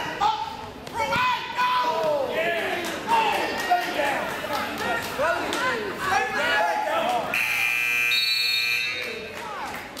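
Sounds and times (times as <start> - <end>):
timer buzzer tone: 7.3 - 9.1.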